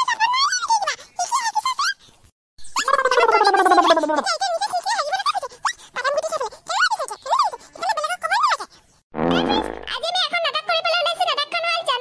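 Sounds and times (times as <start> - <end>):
squeaky cartoon voices: 2.7 - 4.6
voice sliding down in pitch: 2.9 - 4.2.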